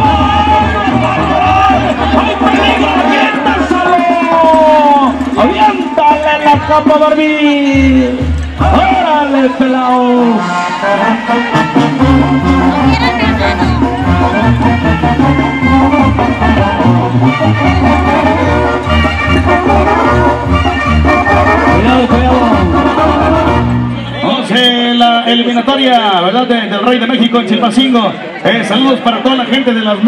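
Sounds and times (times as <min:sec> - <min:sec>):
bouncing bass line: 0:00.0 - 0:09.3, 0:11.5 - 0:24.2
brass band music: 0:00.0 - 0:27.0.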